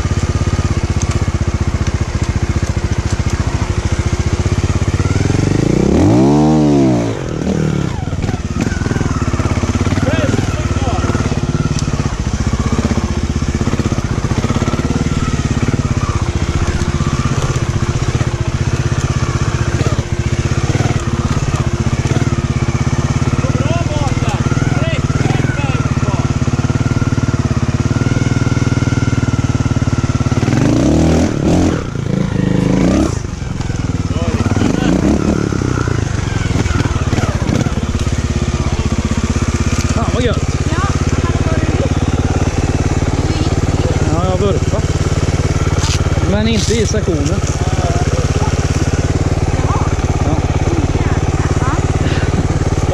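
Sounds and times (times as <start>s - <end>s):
motorcycle engine revving: 0.0s - 52.9s.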